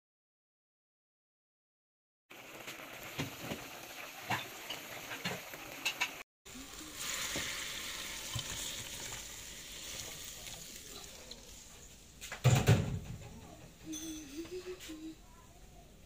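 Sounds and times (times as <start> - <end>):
sauce bubbling in a clay pot: 2.3 - 12.2.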